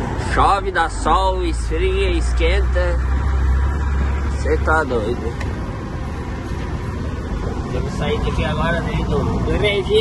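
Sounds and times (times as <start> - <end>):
road noise: 0.0 - 10.0
truck engine drone: 0.0 - 10.0.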